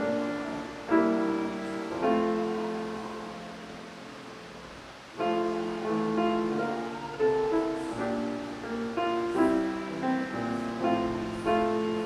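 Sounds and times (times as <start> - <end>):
faint background hiss: 0.0 - 12.0
piano chord: 0.0 - 12.0.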